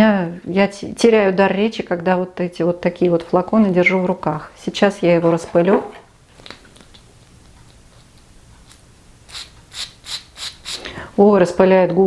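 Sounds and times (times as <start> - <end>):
perfume atomizer spraying: 8.7 - 11.0.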